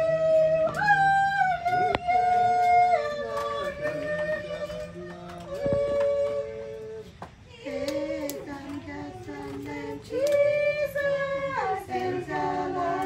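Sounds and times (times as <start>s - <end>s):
voices singing in harmony: 0.0s - 13.0s.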